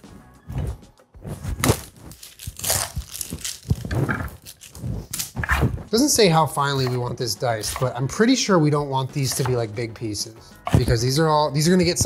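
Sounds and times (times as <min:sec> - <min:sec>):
knife cutting onion on wooden board: 0:06.6 - 0:08.1, 0:09.2 - 0:09.7, 0:10.5 - 0:11.2.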